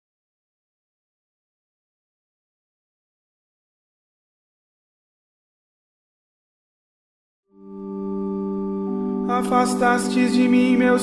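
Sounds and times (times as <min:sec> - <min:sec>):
sustained organ-like chord: 0:07.5 - 0:11.0.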